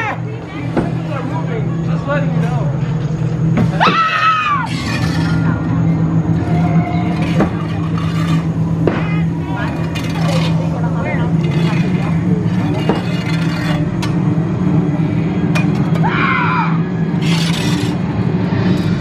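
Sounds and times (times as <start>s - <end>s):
people's voices: 0.0s - 17.8s
steady low hum: 0.0s - 19.0s.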